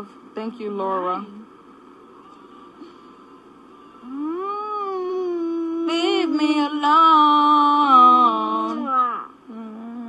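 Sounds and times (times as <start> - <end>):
woman singing long held note: 4.0 - 8.9.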